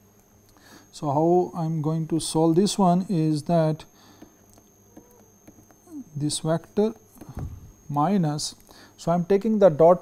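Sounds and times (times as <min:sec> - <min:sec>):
faint low hum: 0:00.0 - 0:10.0
high-pitched electrical whine: 0:00.0 - 0:10.0.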